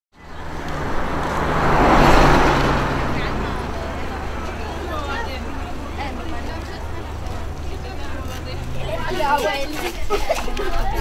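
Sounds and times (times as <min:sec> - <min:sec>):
faint voices: 0:00.2 - 0:11.0
road vehicle passing by: 0:00.2 - 0:11.0.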